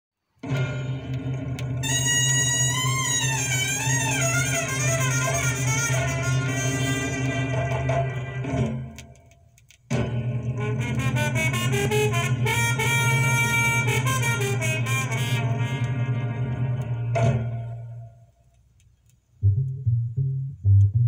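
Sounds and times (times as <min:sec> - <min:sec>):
latin dance music with brass: 0:01.8 - 0:09.0, 0:10.4 - 0:18.1.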